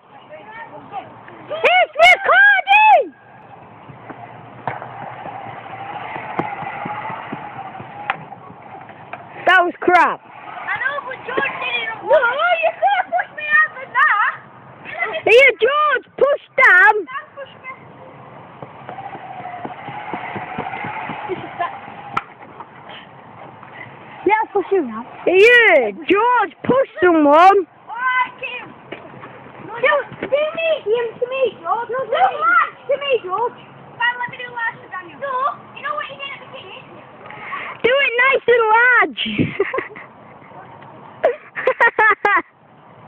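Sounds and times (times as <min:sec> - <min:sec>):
people whooping and shouting: 0:01.5 - 0:14.4, 0:18.8 - 0:23.1, 0:23.7 - 0:26.6
zip wire trolley whirring: 0:04.4 - 0:13.2, 0:18.8 - 0:23.1, 0:23.7 - 0:27.1.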